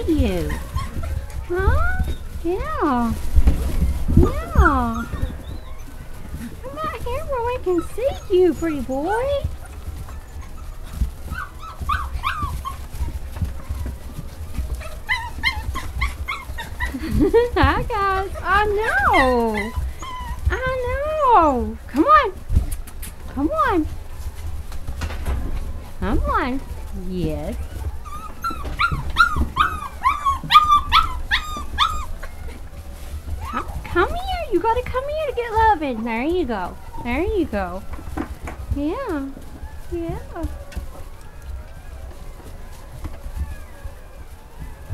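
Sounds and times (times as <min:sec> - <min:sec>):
puppies whining: 0:00.0 - 0:44.9
puppies yipping: 0:00.0 - 0:44.9.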